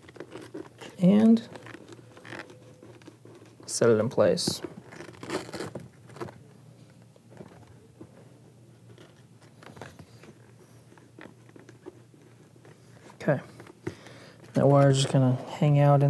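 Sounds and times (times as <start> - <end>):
scratching and rustling of fabric: 0.0 - 15.4.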